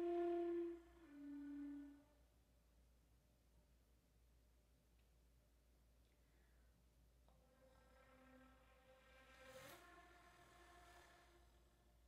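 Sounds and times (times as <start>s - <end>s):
soft flute held notes: 0.0s - 2.3s, 7.4s - 11.9s.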